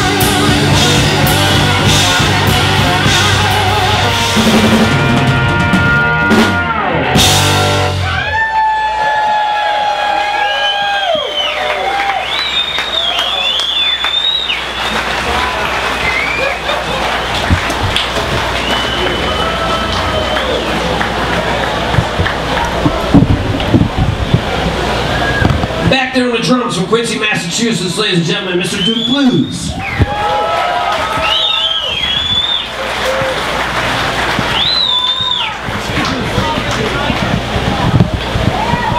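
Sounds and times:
rock band holding a chord: 0.0 - 8.4
audience applauding and cheering: 0.0 - 25.8, 28.8 - 38.9.

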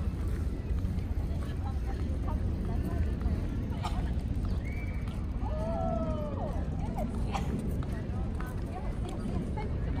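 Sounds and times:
faint scattered voices: 0.0 - 10.0.

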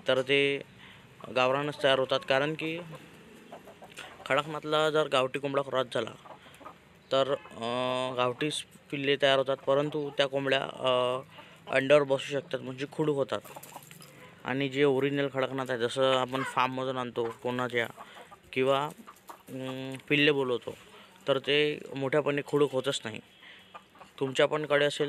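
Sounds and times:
chicken clucking: 0.2 - 25.0.

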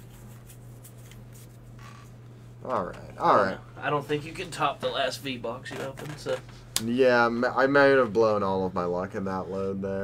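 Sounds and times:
papery swishes of cards: 0.0 - 1.6
steady low hum: 0.0 - 10.0.

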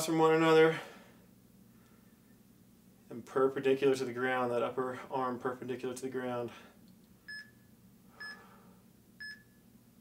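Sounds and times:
high electronic timer beeps: 7.3 - 7.5, 9.2 - 9.6.

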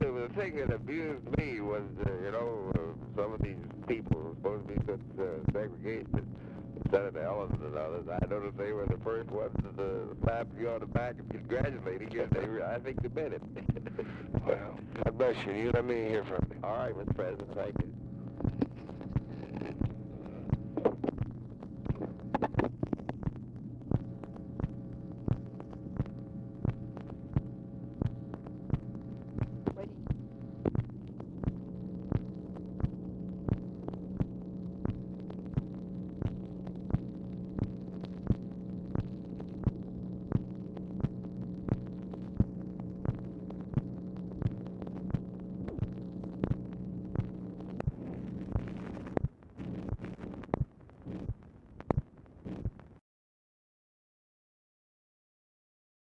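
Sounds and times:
steady playback hum: 0.0 - 53.0
regular clicks: 18.3 - 52.8.

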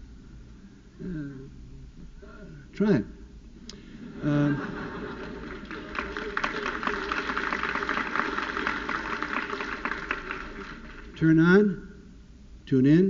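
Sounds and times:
audience applauding: 4.1 - 11.4.

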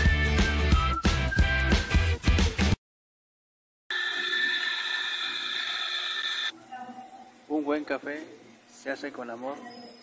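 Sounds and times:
coffee grinder whirring: 3.9 - 6.5.

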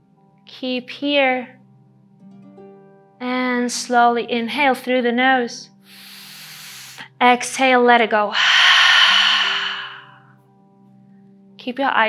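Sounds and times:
soft background music: 0.0 - 12.0
woman exhaling: 8.3 - 10.3.

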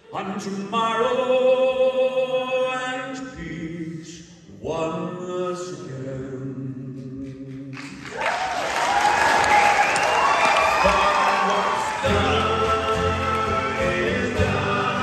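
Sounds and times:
audience cheering and applauding: 7.7 - 15.0
acoustic guitars: 10.4 - 15.0.

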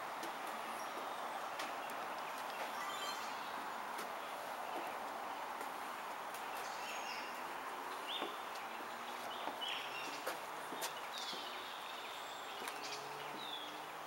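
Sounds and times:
bird chirps: 1.8 - 3.7.

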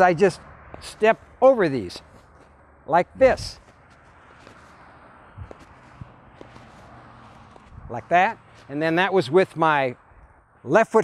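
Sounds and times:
faint outdoor background noise: 0.0 - 11.0
flip-flop footsteps on grass: 1.9 - 9.0.

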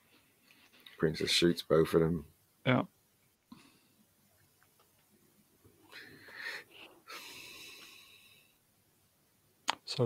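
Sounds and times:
steady hiss with level tones: 0.0 - 10.0.

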